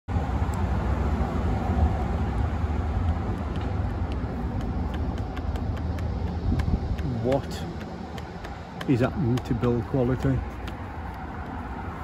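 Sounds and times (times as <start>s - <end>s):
low outdoor rumble: 0.1s - 12.0s.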